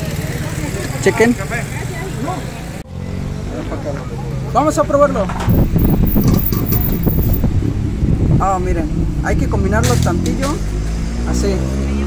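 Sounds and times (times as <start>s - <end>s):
low rumble: 5.2s - 11.0s.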